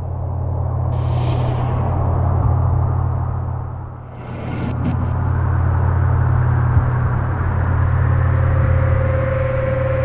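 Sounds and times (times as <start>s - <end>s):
low cinematic drone: 0.0s - 10.0s.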